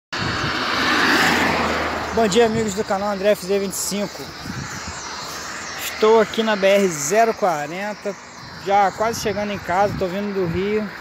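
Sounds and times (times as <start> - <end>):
vehicle passing: 0.2 - 11.0.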